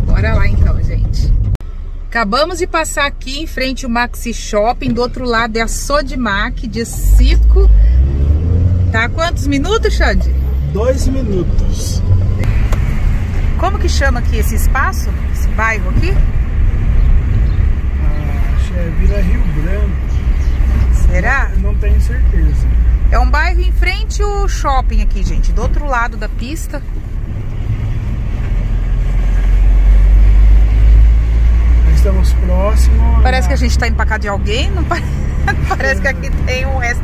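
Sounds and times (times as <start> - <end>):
car engine rumble: 0.0 - 37.0
road noise: 0.0 - 37.0
person speaking: 32.9 - 33.8.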